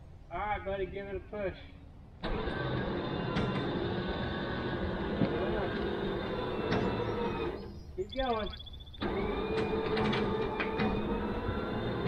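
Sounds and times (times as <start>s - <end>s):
winch motor running under load: 2.2s - 7.8s, 9.0s - 12.0s.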